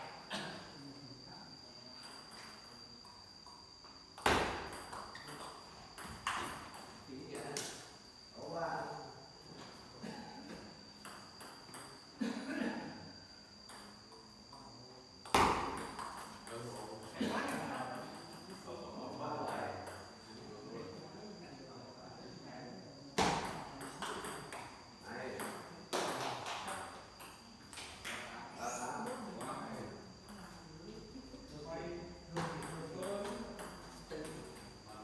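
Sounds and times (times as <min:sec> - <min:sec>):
loud table tennis ball hit: 0:04.2 - 0:06.9, 0:15.2 - 0:16.5, 0:23.2 - 0:24.7, 0:25.3 - 0:27.0.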